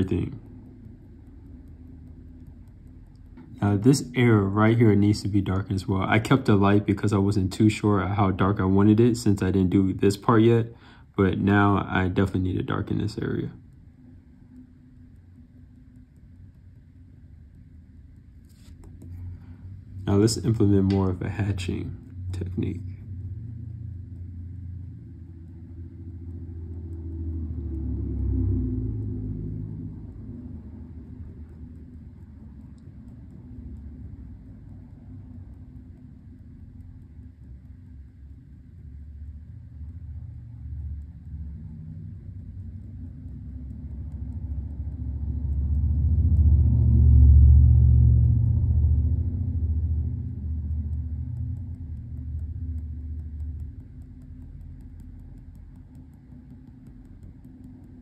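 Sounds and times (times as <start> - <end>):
low steady rumble: 0.0 - 58.0.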